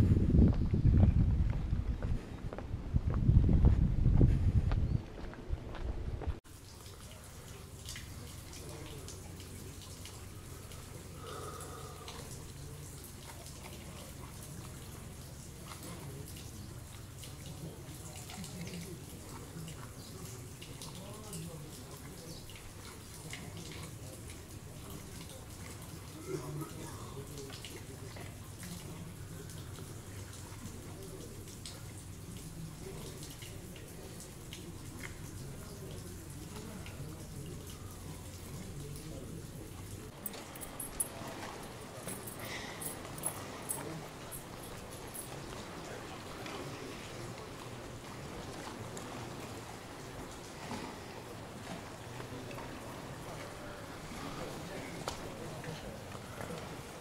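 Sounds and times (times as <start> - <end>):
fountain water trickling: 6.4 - 57.0.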